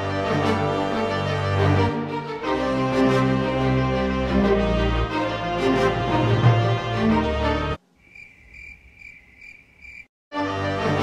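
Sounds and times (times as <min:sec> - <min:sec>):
trailer music: 0:00.0 - 0:07.8
cricket chirping: 0:07.8 - 0:10.1.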